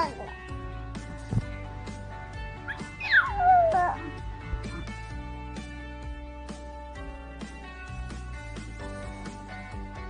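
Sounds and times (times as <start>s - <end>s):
background music with sustained tones: 0.0s - 10.0s
baby squealing: 2.7s - 4.2s.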